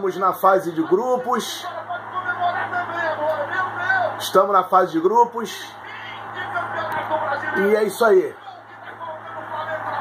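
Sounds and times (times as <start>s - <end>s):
sports commentator on television: 0.0s - 10.0s
steady low hum: 0.0s - 10.0s.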